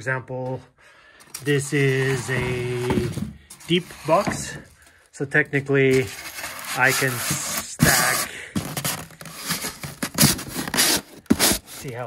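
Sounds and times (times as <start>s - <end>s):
foam board scraping against box: 3.6s - 4.7s, 5.9s - 12.0s.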